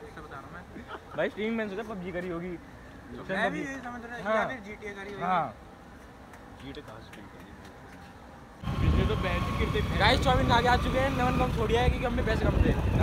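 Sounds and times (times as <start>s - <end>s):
quiet street background: 0.0s - 13.0s
motorbike road rumble: 8.6s - 13.0s
riders talking: 8.6s - 13.0s
wind buffeting microphone: 8.6s - 13.0s.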